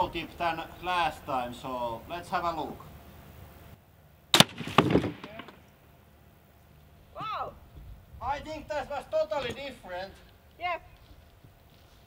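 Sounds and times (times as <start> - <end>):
crossbow shot crack: 4.3 - 5.8.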